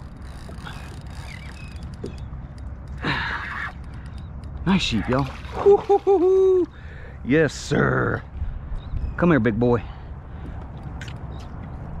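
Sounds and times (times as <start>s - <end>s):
fishing reel spinning: 0.0s - 2.0s
low rumble of wind and water: 0.0s - 12.0s.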